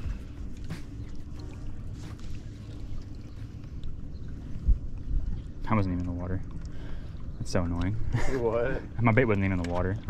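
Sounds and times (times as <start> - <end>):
low rumble of wind and water: 0.0 - 10.0.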